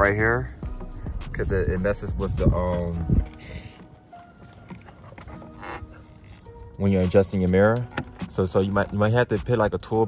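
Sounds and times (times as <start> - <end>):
quiet background music: 0.0 - 10.0
light taps and rubbing of plastic: 7.8 - 9.3.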